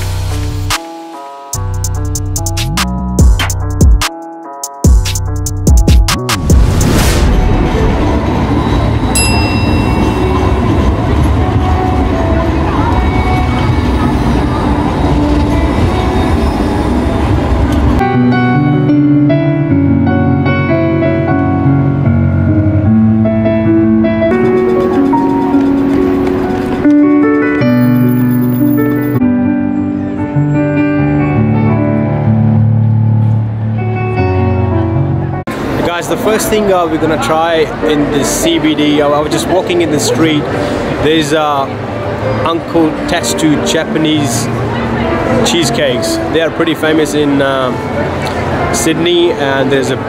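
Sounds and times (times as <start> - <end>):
digital piano chords: 0.0 - 6.8, 7.8 - 50.0
tram rumbling on rails: 6.5 - 18.0, 24.2 - 29.2
high ringing tone: 8.5 - 11.2.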